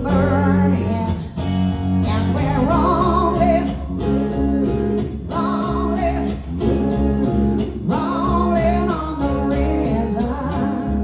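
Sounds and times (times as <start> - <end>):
woman singing: 0.0 - 1.4, 2.0 - 11.0
electric guitar: 0.0 - 11.0
live rock band playing: 0.0 - 11.0.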